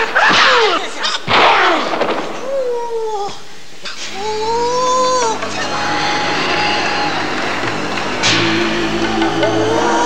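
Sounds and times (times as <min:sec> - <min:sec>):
sharp bangs: 0:00.0 - 0:02.6, 0:05.3 - 0:10.0.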